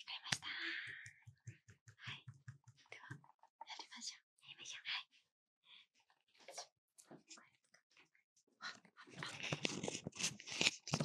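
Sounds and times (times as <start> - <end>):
rustling and crinkling props: 9.0 - 11.0.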